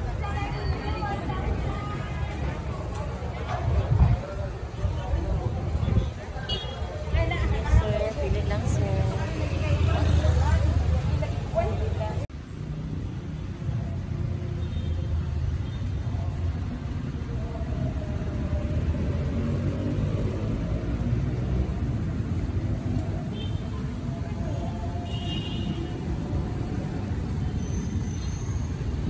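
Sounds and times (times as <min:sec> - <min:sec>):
people talking nearby: 0:00.0 - 0:12.3
low traffic rumble: 0:00.0 - 0:29.0.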